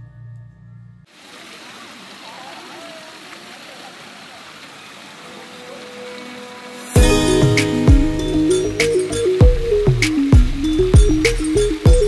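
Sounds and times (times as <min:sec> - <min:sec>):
water pouring and splashing into pool: 0:01.1 - 0:08.2.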